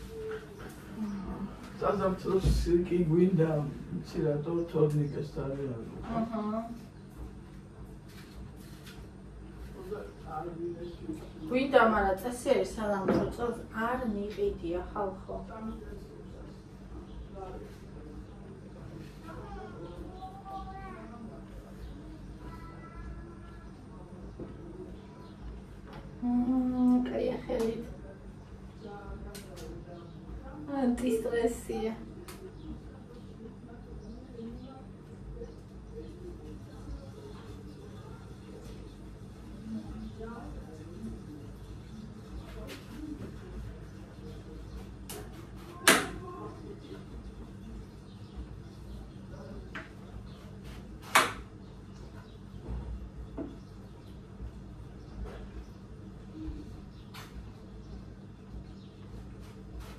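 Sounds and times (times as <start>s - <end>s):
woman humming: 0.9s - 1.6s, 26.2s - 27.1s.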